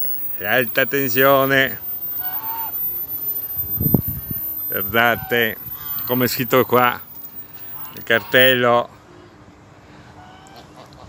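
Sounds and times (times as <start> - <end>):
goose honking: 2.0 - 2.8, 5.0 - 8.6.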